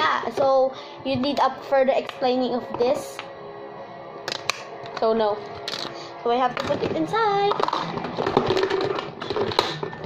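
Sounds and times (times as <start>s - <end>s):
plastic toy pieces clattering: 6.6s - 10.0s.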